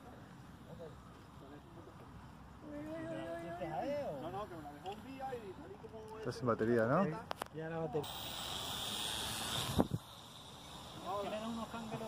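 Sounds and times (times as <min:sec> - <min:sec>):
small electric motor whine: 0:08.0 - 0:12.0.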